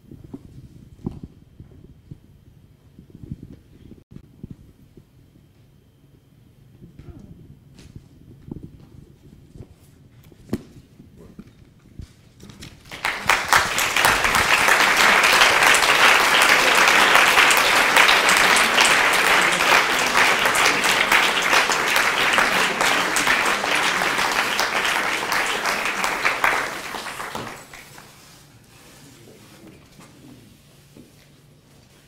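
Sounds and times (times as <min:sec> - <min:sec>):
audience applauding: 0:12.8 - 0:28.2.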